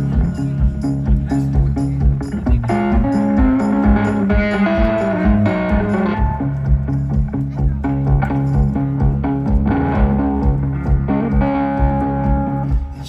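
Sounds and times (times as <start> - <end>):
kick drum beat: 0.0 - 13.0
live band through loudspeakers: 0.0 - 13.0.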